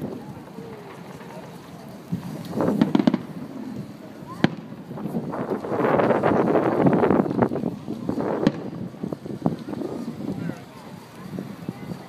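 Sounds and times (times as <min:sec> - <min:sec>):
fireworks bangs: 0:00.0 - 0:12.0.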